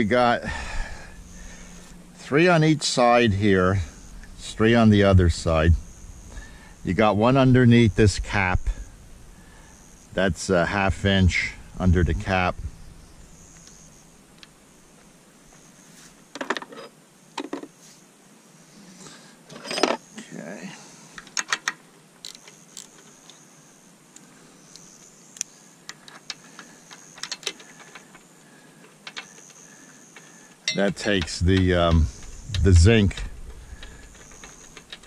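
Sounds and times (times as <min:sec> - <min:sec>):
metal wrench clinking on bolts: 0:30.7 - 0:31.4.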